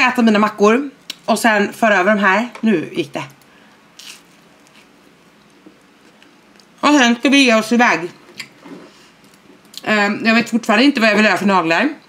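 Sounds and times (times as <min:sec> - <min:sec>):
crunch of biting toast: 0:04.0 - 0:04.9
faint chewing: 0:04.0 - 0:06.8.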